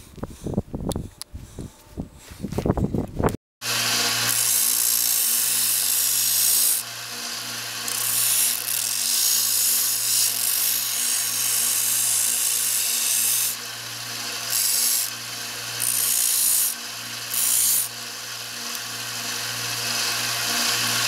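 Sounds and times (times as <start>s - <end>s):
belt sander motor hum: 3.6s - 21.0s
sheet metal grinding on belt: 3.6s - 21.0s.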